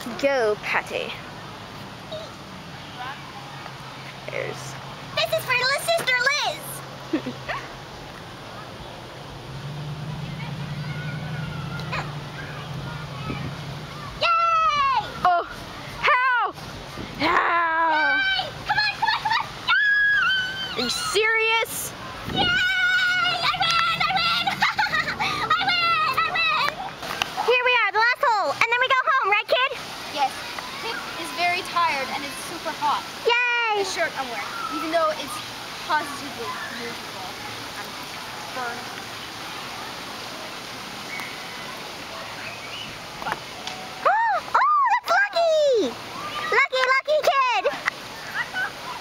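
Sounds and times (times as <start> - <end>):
outdoor noise haze: 0.0 - 49.0
high wordless vocal cries: 22.4 - 26.6.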